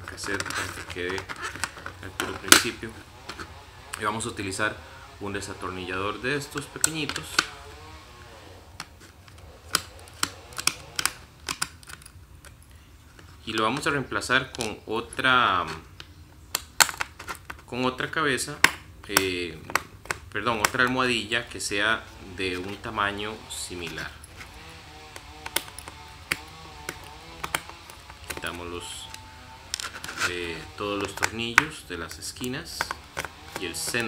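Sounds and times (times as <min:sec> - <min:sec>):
fingers and screwdriver tapping cassette: 0:00.0 - 0:03.5, 0:08.8 - 0:12.6, 0:23.8 - 0:34.0.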